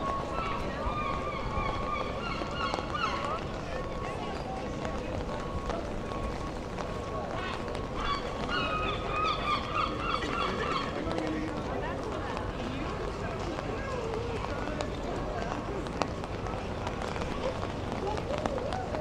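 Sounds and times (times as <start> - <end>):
passers-by talking: 0.0 - 19.0.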